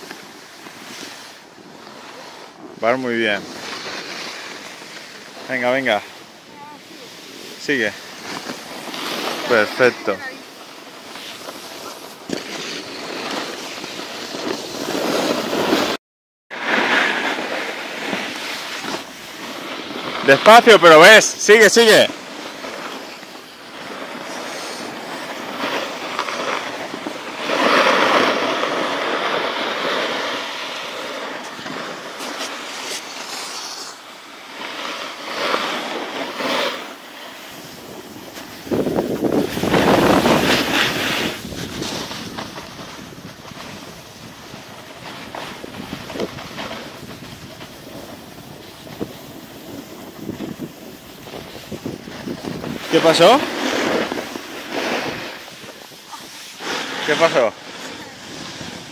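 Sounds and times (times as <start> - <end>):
skis hissing on snow: 0.0 - 16.0, 16.6 - 58.9
wind on microphone: 37.5 - 58.9.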